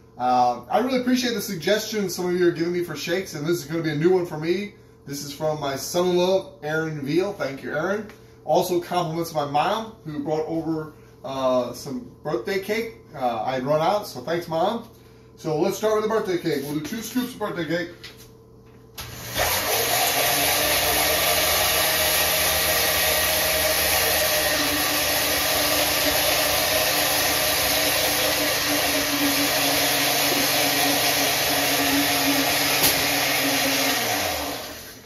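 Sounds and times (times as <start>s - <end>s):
blender running: 19.0s - 35.0s.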